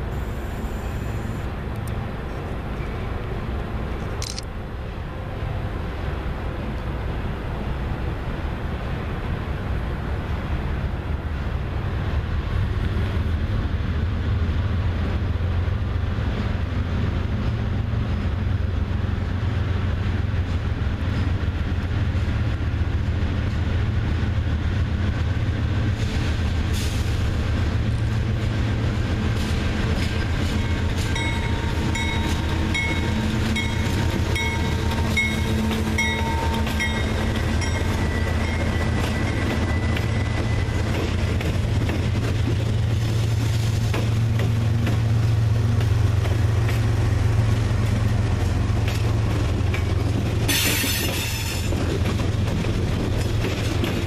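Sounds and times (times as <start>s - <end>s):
diesel locomotive engine rumble: 0.0s - 54.0s
train wheels on rail: 0.0s - 54.0s.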